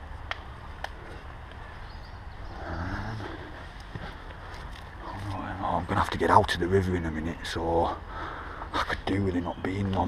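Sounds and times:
stones clacking underfoot: 3.6 - 6.6.

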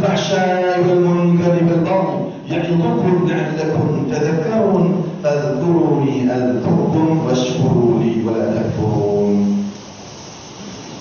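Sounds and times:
man chanting over microphone: 0.0 - 9.8
faint room hiss: 0.0 - 11.0.

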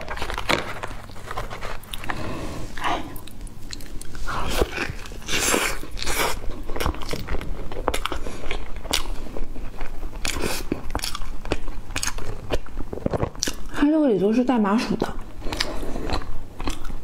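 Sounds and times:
chewing with mouth clicks: 2.8 - 13.8, 15.0 - 17.0.

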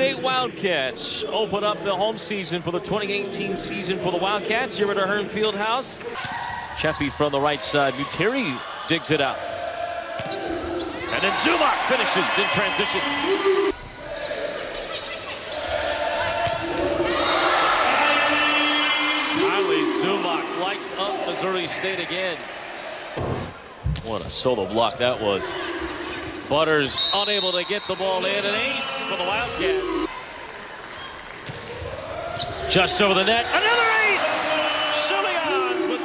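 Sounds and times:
crowd cheering: 6.1 - 23.8, 27.0 - 36.0
volleyball hits: 10.1 - 10.8.

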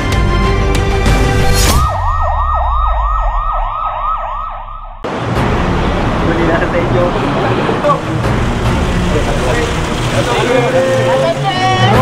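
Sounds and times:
electronic siren yelping wail: 1.7 - 5.1.

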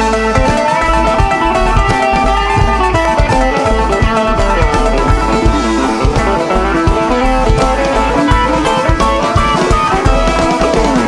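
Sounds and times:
banjo: 0.0 - 11.0
drums: 0.0 - 11.0
electric guitar: 0.0 - 11.0
upright bass: 0.0 - 11.0.

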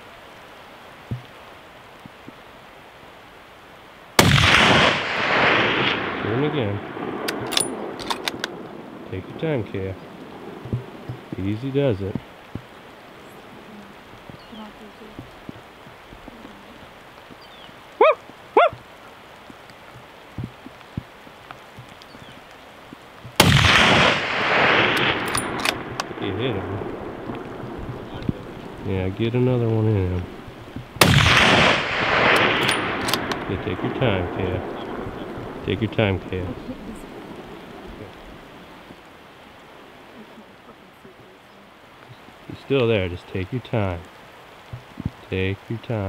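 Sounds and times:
outdoor background hiss: 0.0 - 46.0
rifle shot: 4.2 - 8.6, 23.4 - 26.9, 31.0 - 35.1.

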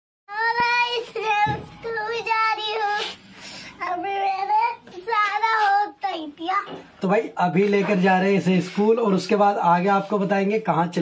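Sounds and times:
child singing: 0.3 - 6.8.

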